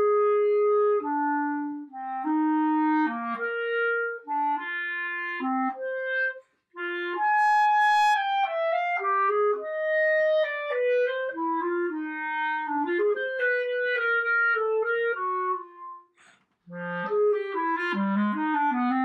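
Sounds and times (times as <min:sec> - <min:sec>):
solo clarinet melody: 0:00.0 - 0:19.0.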